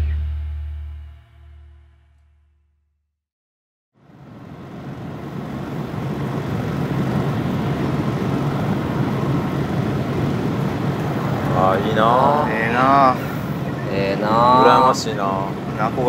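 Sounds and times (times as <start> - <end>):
low hum: 4.0 - 16.0
steady outdoor rushing noise: 4.0 - 16.0
man speaking: 11.4 - 16.0.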